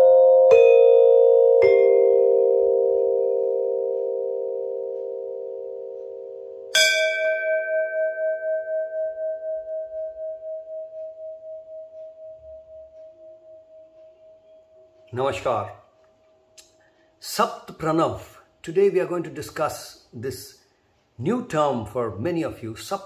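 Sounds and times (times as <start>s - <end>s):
large brass bell ringing: 6.7s - 10.5s.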